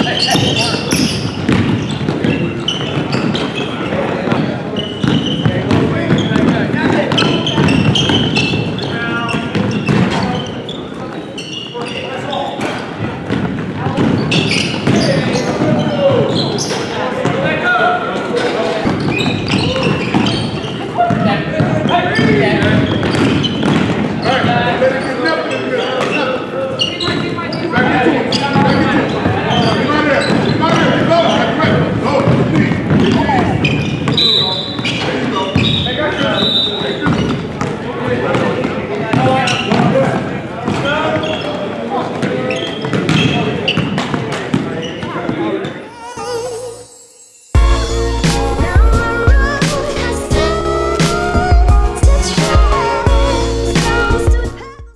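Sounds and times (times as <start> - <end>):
voices echoing in large hall: 0.0 - 54.9.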